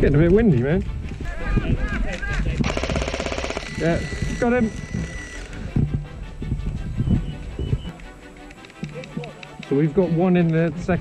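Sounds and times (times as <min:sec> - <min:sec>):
airsoft machine gun burst: 0:02.6 - 0:05.4.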